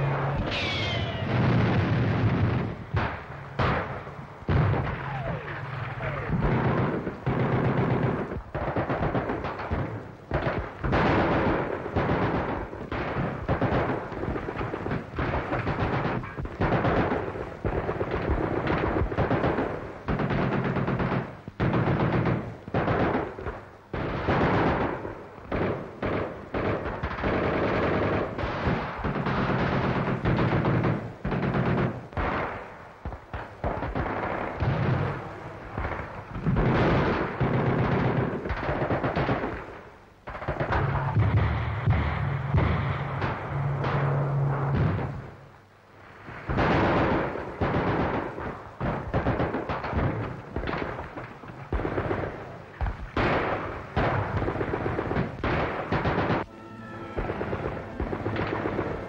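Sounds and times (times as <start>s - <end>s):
rifle and machine-gun fire: 0.0s - 45.5s, 46.4s - 59.0s.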